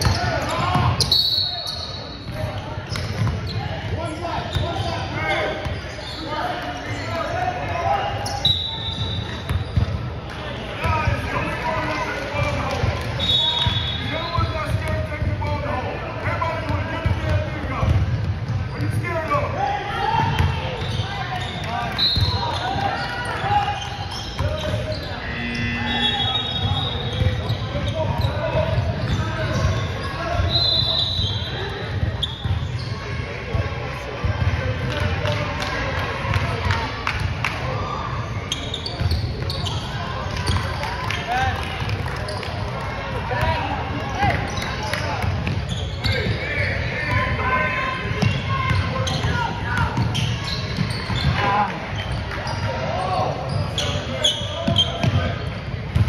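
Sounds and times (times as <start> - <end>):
echoing voices in hall: 0.0 - 56.0.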